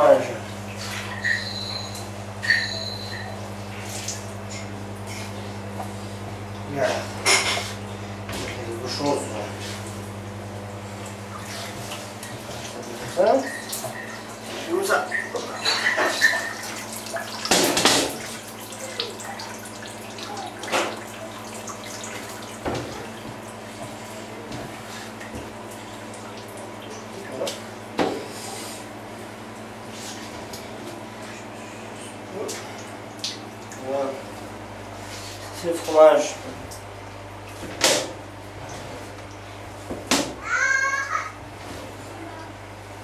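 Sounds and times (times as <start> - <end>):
whey splashing and dripping: 10.9 - 28.0, 32.3 - 37.6.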